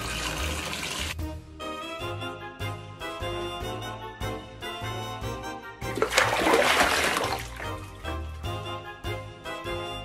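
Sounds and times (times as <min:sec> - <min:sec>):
water splashing: 0:05.9 - 0:08.2.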